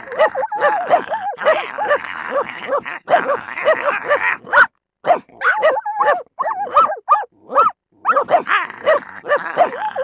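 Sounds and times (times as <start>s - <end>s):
dogs barking and yipping: 0.0s - 10.0s.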